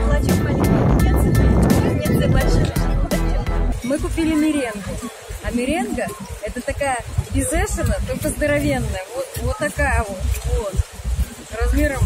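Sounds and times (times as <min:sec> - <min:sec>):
background music with steady beat: 0:00.0 - 0:04.5
wind buffeting microphone: 0:00.0 - 0:12.0.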